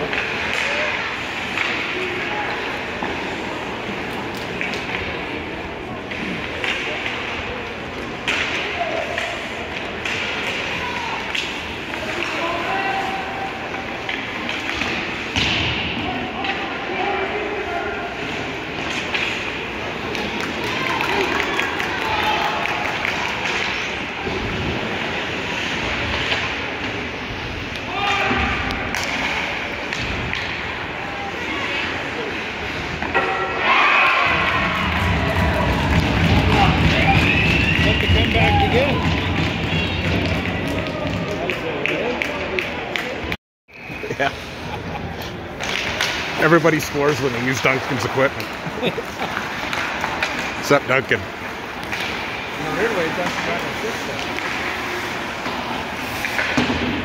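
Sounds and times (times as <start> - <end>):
crowd cheering and shouting: 33.2 - 41.5
thuds of puck and sticks: 56.2 - 57.0.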